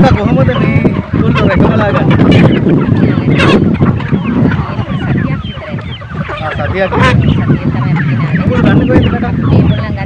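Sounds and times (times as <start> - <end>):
poultry calling: 0.0 - 10.0.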